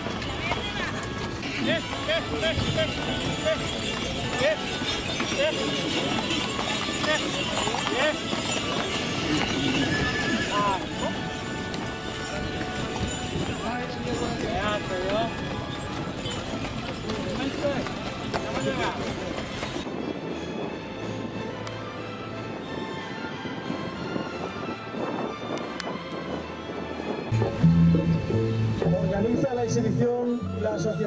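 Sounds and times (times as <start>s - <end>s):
voices: 0.0s - 19.8s
horse hooves clip-clopping on dirt: 0.0s - 19.9s
music: 0.0s - 31.0s.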